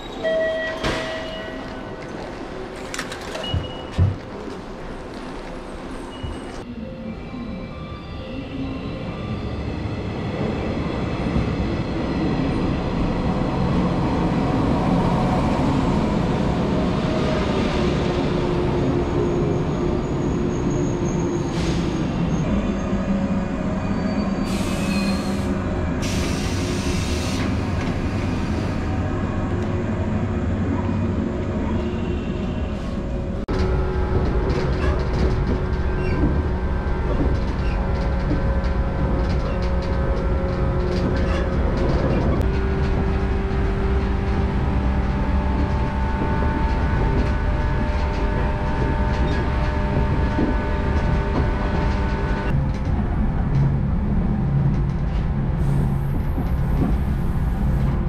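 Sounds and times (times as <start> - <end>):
low rumble inside train carriage: 21.9 - 58.0.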